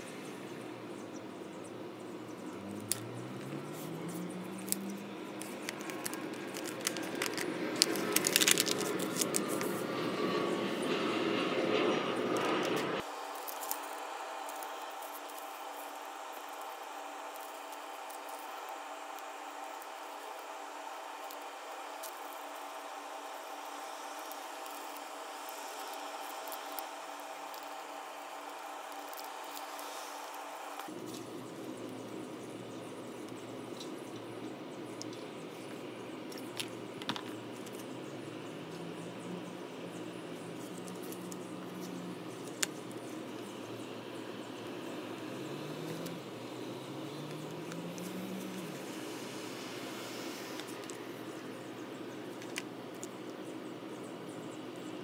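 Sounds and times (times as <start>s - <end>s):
steady hiss: 0.0s - 10.9s, 12.9s - 55.0s
scissors snipping paper: 2.7s - 10.1s, 12.4s - 31.2s
paper folding and handling: 2.8s - 10.0s
paper rustling: 3.7s - 9.9s.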